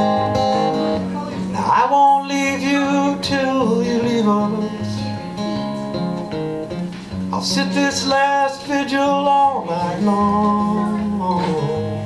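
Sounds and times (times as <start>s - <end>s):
acoustic guitar picking and strumming: 0.0s - 12.0s
person singing folk song: 0.0s - 12.0s.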